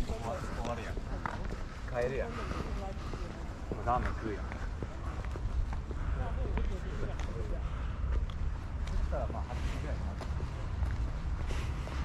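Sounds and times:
people talking indistinctly: 0:00.0 - 0:12.0.

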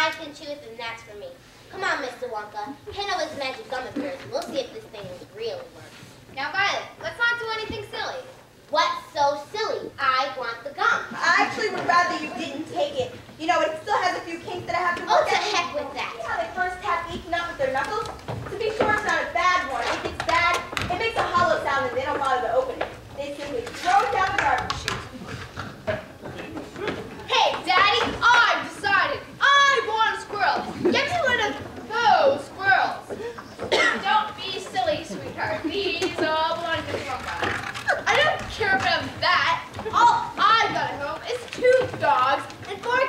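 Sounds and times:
young voices speaking: 0:00.0 - 0:43.0.

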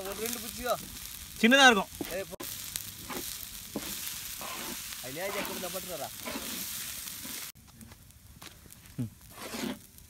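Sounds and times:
rice sizzling in a wok: 0:00.0 - 0:10.0
spatula stirring in a wok: 0:01.9 - 0:07.6, 0:09.2 - 0:09.9.

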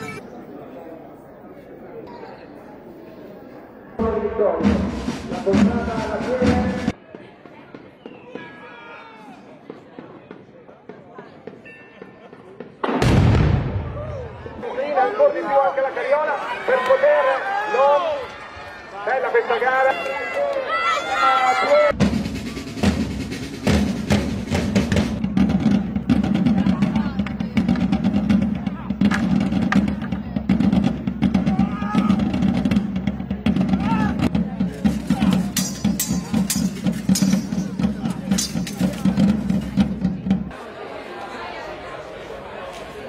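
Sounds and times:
fast drum strikes: 0:04.6 - 0:07.0, 0:21.9 - 0:40.5.

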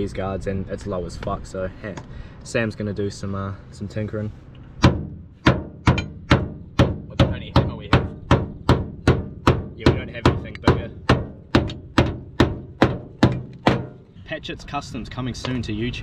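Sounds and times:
hammer beating sheet metal: 0:04.8 - 0:14.1.

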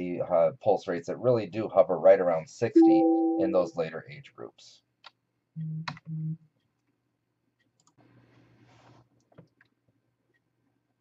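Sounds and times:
computer mouse clicks: 0:07.6 - 0:08.4.

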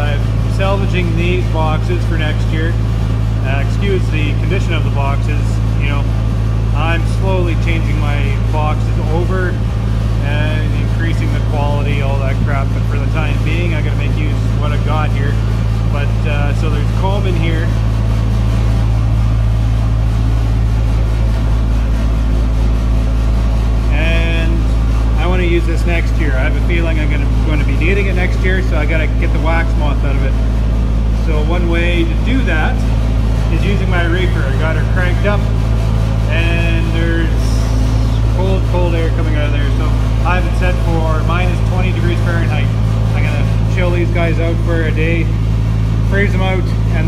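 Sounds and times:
refrigeration unit humming: 0:00.0 - 0:47.0.

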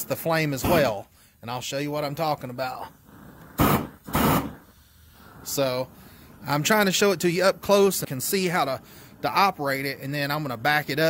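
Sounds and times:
propane torch hissing: 0:00.0 - 0:11.0
flame roar surges: 0:02.1 - 0:10.6.

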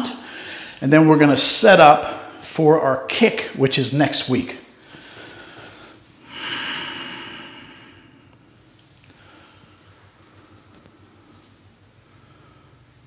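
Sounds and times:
man breathing up close: 0:00.2 - 0:00.8, 0:04.8 - 0:08.4.

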